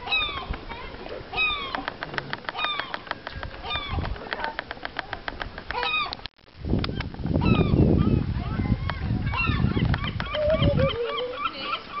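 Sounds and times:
wavering lower bird call: 0:09.3 - 0:12.0.

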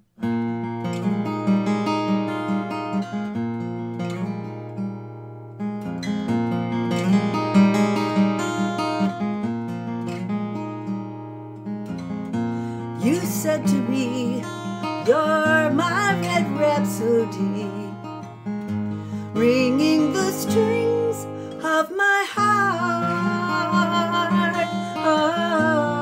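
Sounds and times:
acoustic guitar chords: 0:00.0 - 0:26.0.

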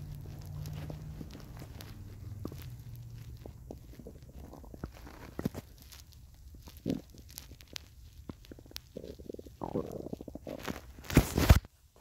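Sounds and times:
microphone handling clicks and rubbing: 0:00.0 - 0:11.7.

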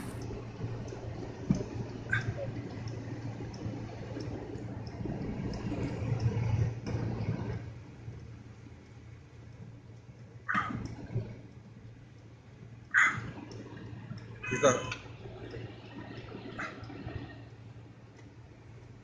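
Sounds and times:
tyres rushing on snow: 0:00.0 - 0:00.2
low car hum: 0:00.0 - 0:19.0.

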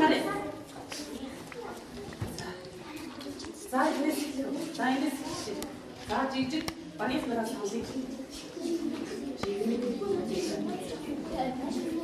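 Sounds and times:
voices in a classroom: 0:00.0 - 0:12.0.

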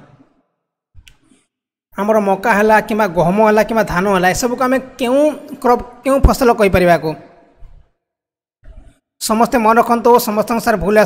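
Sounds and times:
person speaking: 0:01.9 - 0:07.9, 0:08.6 - 0:11.0.

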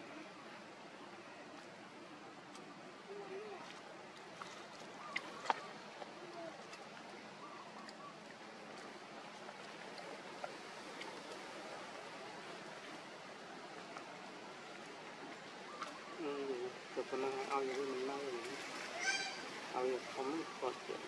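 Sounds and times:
outdoor background hiss: 0:00.0 - 0:21.0.

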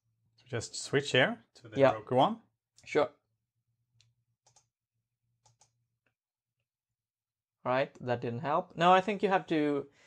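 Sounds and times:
computer mouse clicks: 0:04.0 - 0:04.8, 0:05.4 - 0:06.2.

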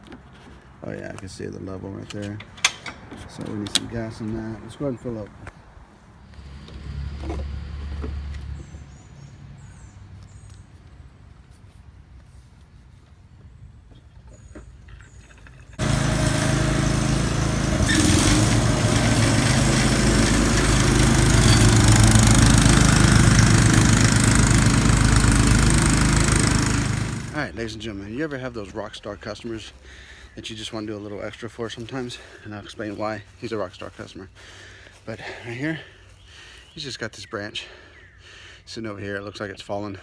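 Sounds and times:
riding mower engine running: 0:15.3 - 0:28.2.

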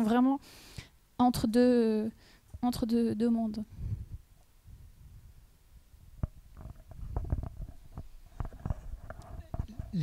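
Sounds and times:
microphone handling noise: 0:03.7 - 0:05.4, 0:06.0 - 0:10.0.

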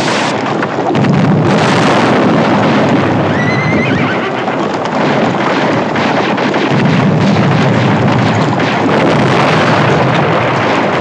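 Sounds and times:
galloping horses' hooves: 0:00.0 - 0:11.0
horse whinnying: 0:03.3 - 0:04.8.

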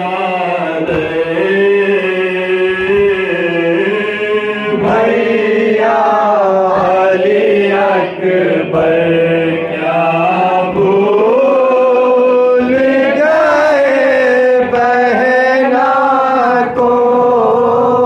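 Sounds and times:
man chanting into a microphone: 0:00.0 - 0:18.0.

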